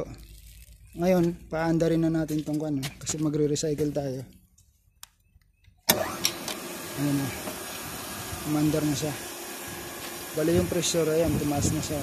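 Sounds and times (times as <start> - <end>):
water pump rushing hiss: 5.9 - 12.0.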